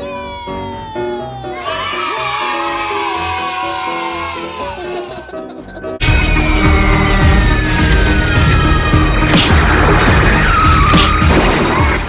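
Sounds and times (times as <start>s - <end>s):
background music with steady beat: 4.9s - 12.0s.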